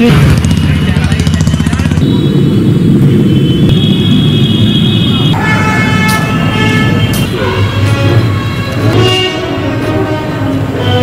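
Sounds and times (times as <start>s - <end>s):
vehicle engine rumbling: 0.0s - 11.0s
vehicle horns: 1.8s - 11.0s.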